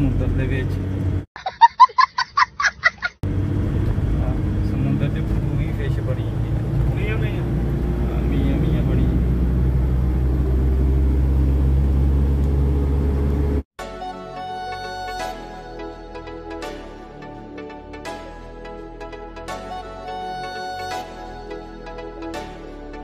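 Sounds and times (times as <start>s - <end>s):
road noise inside cab: 0.0s - 1.3s, 2.6s - 13.7s
child laughing: 1.4s - 3.2s
truck engine drone: 3.2s - 13.6s.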